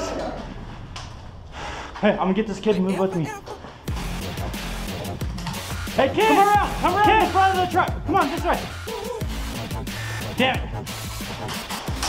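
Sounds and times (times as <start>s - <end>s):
person breathing: 1.4s - 2.0s.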